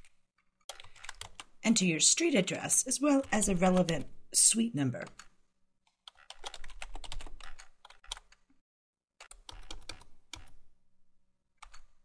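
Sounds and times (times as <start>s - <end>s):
keyboard typing clicks: 0.7s - 1.5s, 5.9s - 8.5s, 9.2s - 10.6s, 11.6s - 11.9s.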